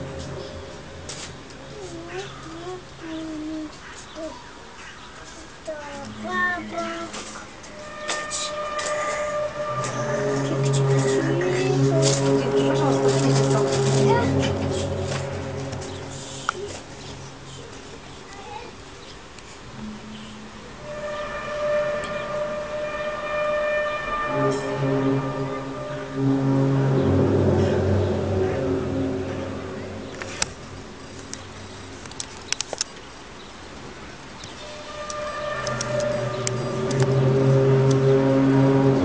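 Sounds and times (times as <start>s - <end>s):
loud low drone: 0.0s - 3.5s, 6.1s - 17.8s, 19.7s - 32.6s, 33.2s - 39.0s.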